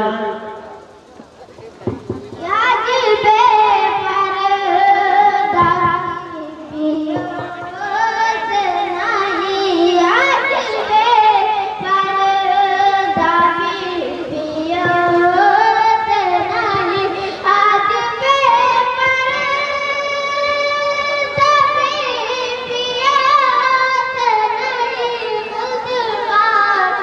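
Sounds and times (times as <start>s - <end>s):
faint crowd noise: 0.0s - 27.0s
person singing through pa: 2.4s - 27.0s.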